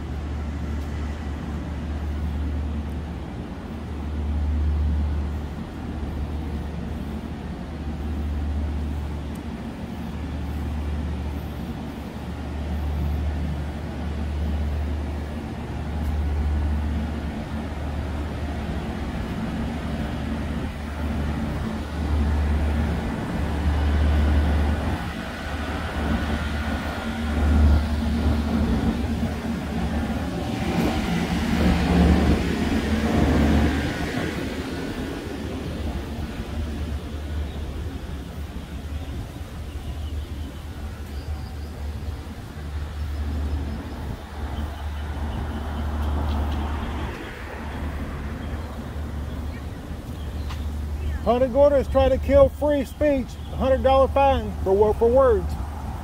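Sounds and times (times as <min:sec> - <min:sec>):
road traffic: 0:00.0 - 0:56.0
vehicle passing: 0:00.0 - 0:56.0.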